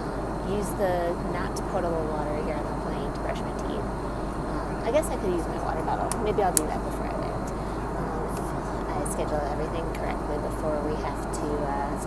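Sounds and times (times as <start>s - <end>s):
jet airliner cabin drone: 0.0s - 12.0s.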